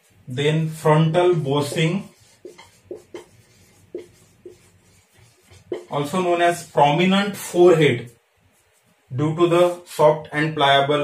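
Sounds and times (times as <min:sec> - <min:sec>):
marker squeaking on whiteboard: 0:01.4 - 0:08.9.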